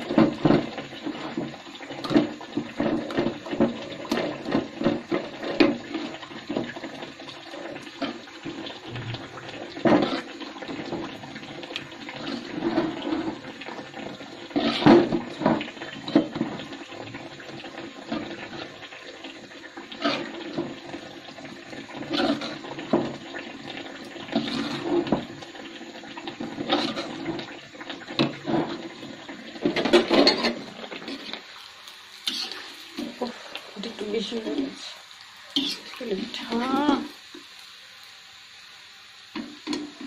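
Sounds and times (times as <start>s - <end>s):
spoon scraping metal pot: 14.5s - 15.6s, 22.0s - 22.6s, 24.3s - 25.2s, 26.5s - 27.4s, 29.6s - 31.4s, 32.2s - 33.2s, 35.6s - 36.0s.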